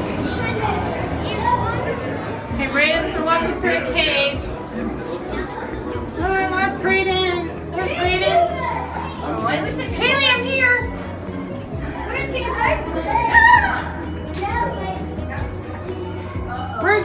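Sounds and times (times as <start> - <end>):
background music: 0.0 - 17.0
children calling and chattering: 0.0 - 17.0.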